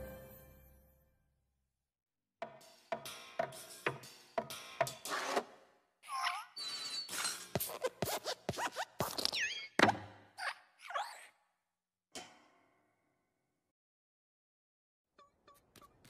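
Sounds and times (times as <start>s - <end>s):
squeaky metal spring creaks: 6.3s - 7.5s.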